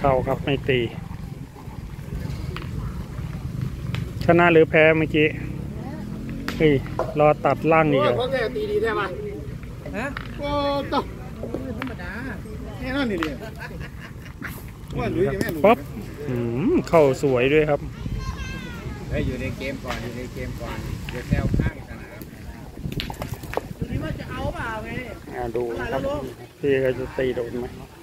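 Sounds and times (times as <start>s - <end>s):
wind rumbling on microphone: 0.0s - 4.4s, 17.6s - 26.2s
background chatter: 0.0s - 28.0s
faint voices: 0.0s - 28.0s.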